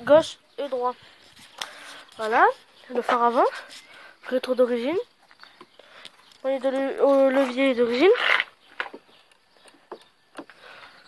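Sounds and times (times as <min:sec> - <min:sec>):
breath: 0:01.0 - 0:02.2, 0:03.5 - 0:04.3, 0:05.7 - 0:06.2, 0:10.5 - 0:11.0.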